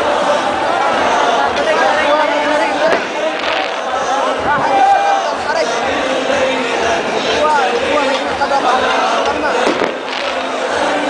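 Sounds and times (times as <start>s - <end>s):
crowd chattering: 0.0s - 11.0s
fireworks cracking: 2.6s - 4.6s, 9.3s - 11.0s.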